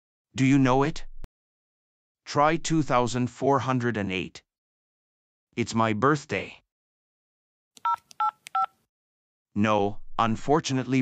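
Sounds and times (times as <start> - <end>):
card terminal keypad beeps: 7.8 - 8.7.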